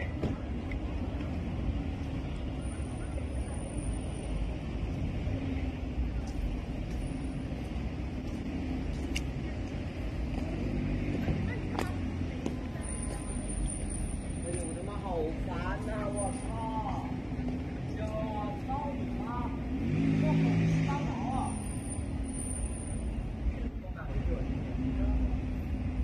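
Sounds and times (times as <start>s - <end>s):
faint voices: 0.0s - 21.7s
distant road traffic hum: 0.0s - 26.0s.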